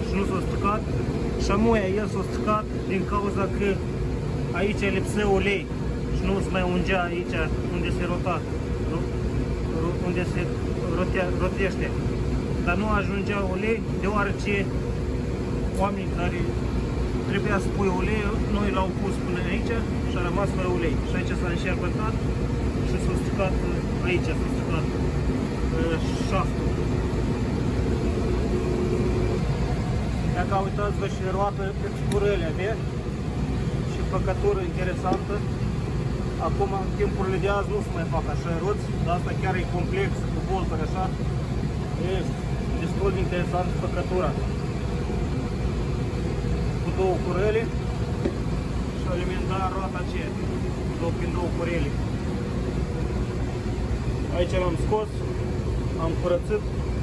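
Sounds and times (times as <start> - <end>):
faint steady hum: 0.0 - 57.0
low mechanical rumble: 0.0 - 57.0.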